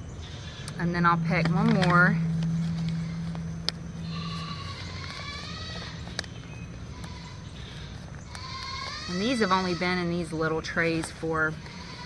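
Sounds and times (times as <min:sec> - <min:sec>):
high-pitched animal call: 0:00.4 - 0:06.3, 0:08.4 - 0:09.9.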